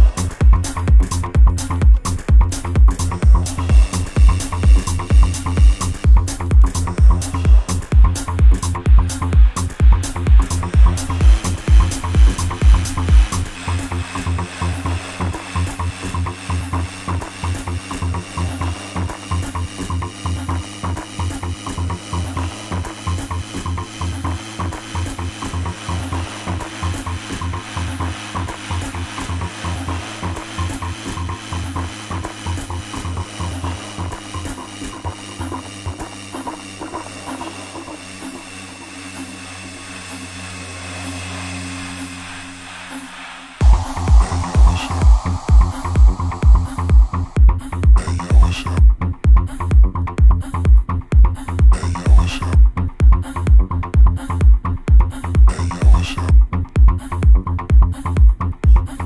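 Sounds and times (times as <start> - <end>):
kick drum: 0.0 - 13.3, 43.6 - 59.0
electronic dance music: 0.0 - 58.8.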